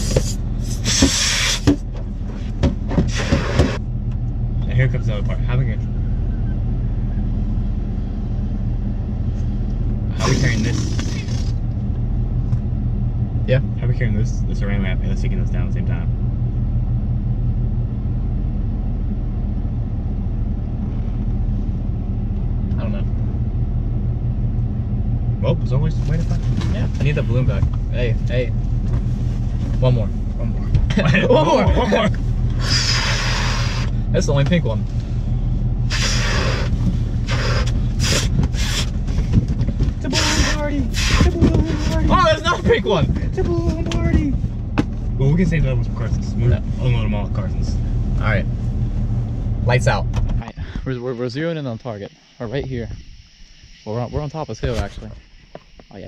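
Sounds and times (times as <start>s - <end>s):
car engine running inside cabin: 0.0s - 51.0s
low rumble: 0.0s - 55.8s
breath puffing into balloons: 0.7s - 1.7s, 32.6s - 33.9s, 35.9s - 39.4s.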